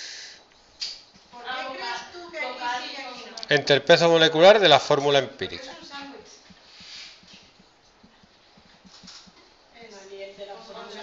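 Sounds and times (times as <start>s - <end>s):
marker writing on whiteboard: 5.9s - 9.4s.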